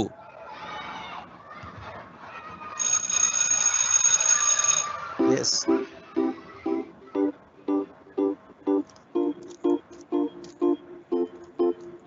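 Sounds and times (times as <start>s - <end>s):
cartoon school bell ringing: 2.8s - 8.4s.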